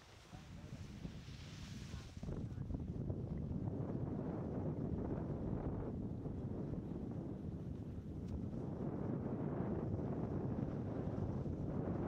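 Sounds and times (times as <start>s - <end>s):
wind buffeting microphone: 0.3s - 12.0s.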